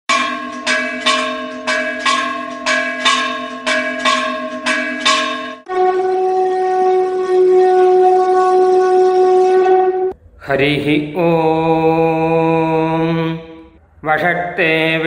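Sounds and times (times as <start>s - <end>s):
bell ringing: 0.1s - 5.8s
conch shell blown: 5.6s - 10.2s.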